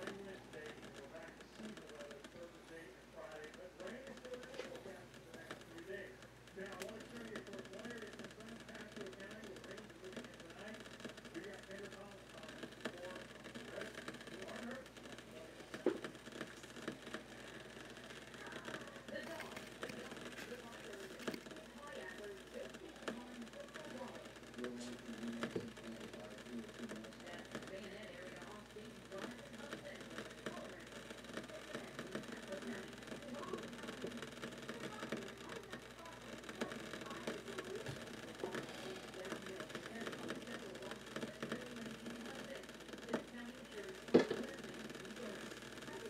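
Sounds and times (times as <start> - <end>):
low steady hum: 0.0 - 46.0
water heating ticks and crackles: 0.0 - 46.0.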